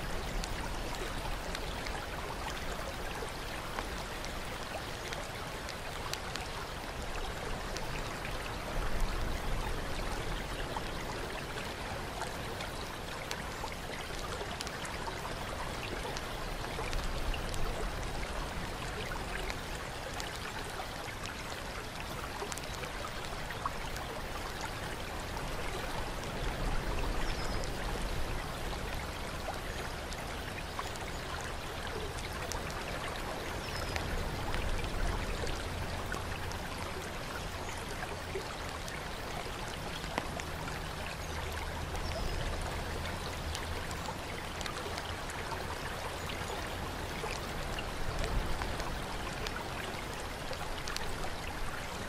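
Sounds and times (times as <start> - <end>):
fountain water splashing: 0.0 - 52.0.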